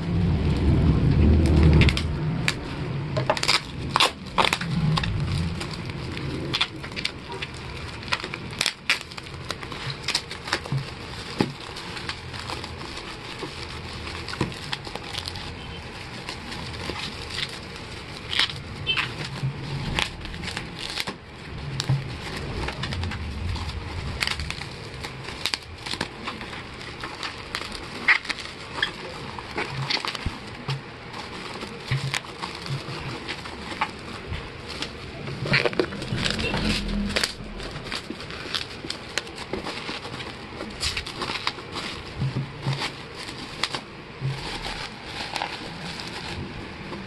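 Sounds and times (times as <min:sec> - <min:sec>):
plastic rustling and scraping: 0:00.0 - 0:47.0
sharp plastic crackles: 0:00.0 - 0:47.0
knife cutting bubble wrap: 0:03.3 - 0:22.9, 0:24.2 - 0:36.9, 0:37.5 - 0:47.0.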